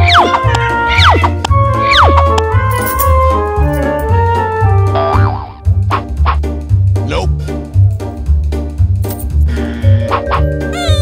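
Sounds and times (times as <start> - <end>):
children's music: 0.0 - 11.0
cartoon boing sound effect: 5.0 - 5.6.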